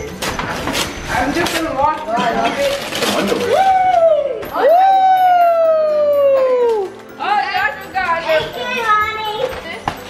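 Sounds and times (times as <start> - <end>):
wrapping paper tearing: 0.1 - 3.8
person exclaiming woo: 3.5 - 6.9.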